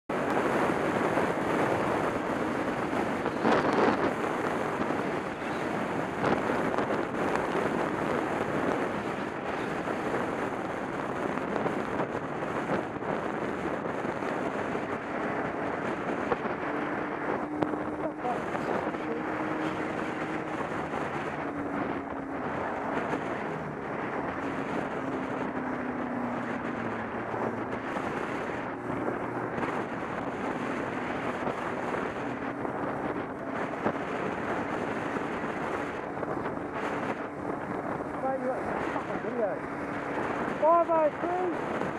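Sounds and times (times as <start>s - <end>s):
wind rushing over microphone: 0.0s - 41.9s
motorcycle engine: 12.4s - 40.8s.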